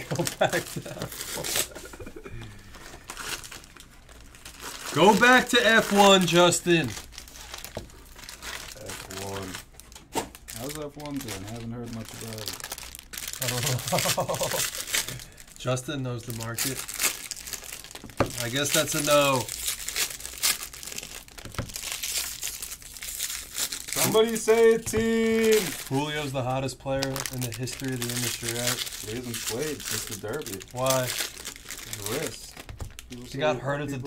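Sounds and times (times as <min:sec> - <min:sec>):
foil wrappers crinkling: 0:00.0 - 0:34.0.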